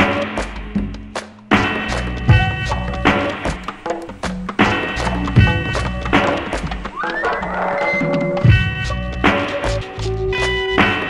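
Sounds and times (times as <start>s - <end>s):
instrumental hip-hop beat: 0.0s - 11.0s.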